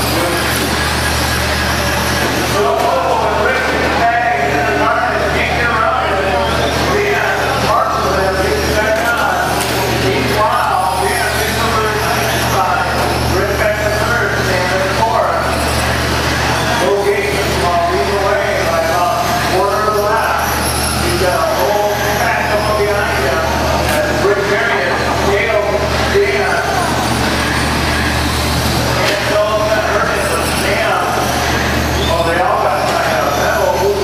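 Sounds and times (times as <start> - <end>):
electric motors of rc trucks whining: 0.0 - 2.6, 29.8 - 32.1
rc truck motor whine: 0.0 - 24.8, 25.4 - 34.0.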